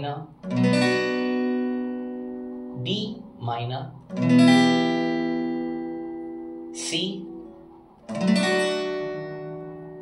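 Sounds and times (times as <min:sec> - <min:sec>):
acoustic guitar chord ringing: 0:00.0 - 0:10.0.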